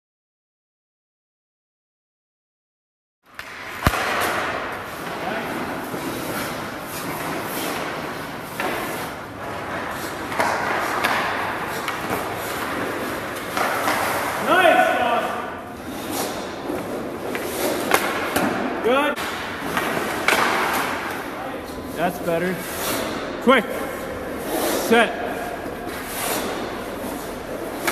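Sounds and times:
ice skates scraping on ice: 3.8s - 18.4s, 19.2s - 23.2s, 23.8s - 27.9s.

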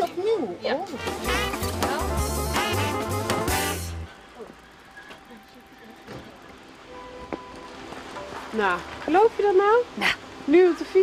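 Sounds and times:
woman speaking: 5.2s - 6.6s, 8.5s - 11.0s.

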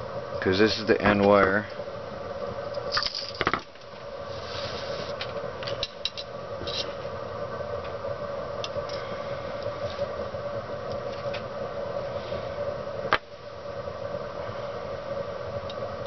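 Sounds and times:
steady hum: 0.0s - 16.0s.

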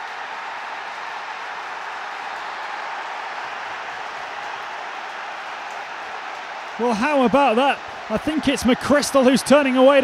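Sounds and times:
applause: 0.0s - 10.0s
stadium crowd cheering: 0.0s - 10.0s.

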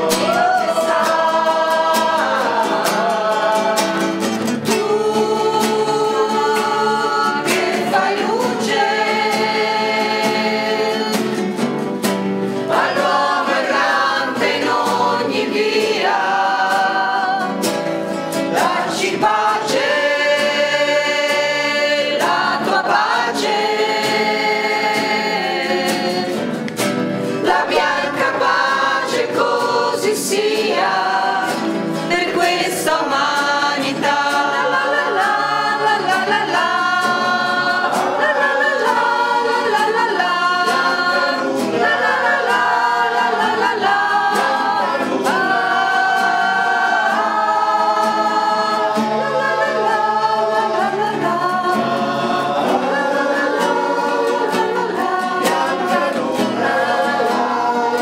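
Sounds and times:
women's choir singing: 0.0s - 58.0s.

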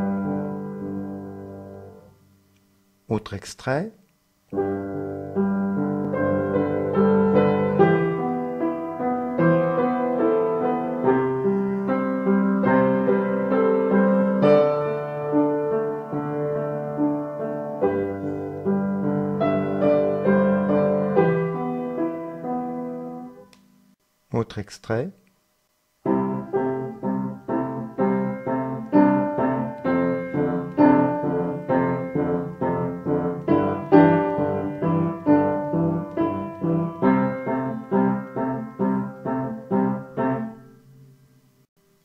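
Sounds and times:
solo piano piece: 0.0s - 2.2s, 4.5s - 23.6s, 26.0s - 41.7s.

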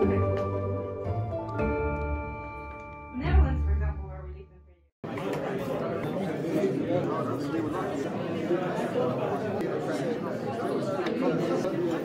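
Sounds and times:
background chatter: 5.0s - 12.0s.

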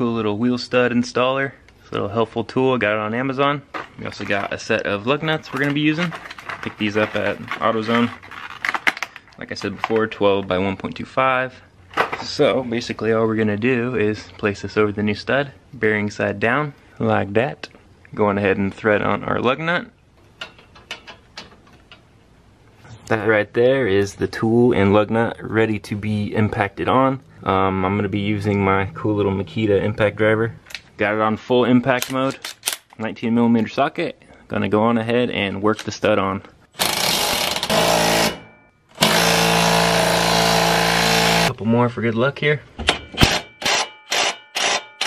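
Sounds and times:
impact driver hammering lug nut: 39.0s - 41.5s.

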